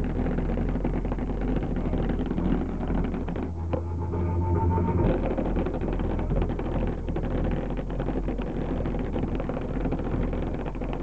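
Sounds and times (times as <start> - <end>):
bass-heavy music from car audio: 0.0 - 10.4
deep sub-bass: 0.0 - 11.0.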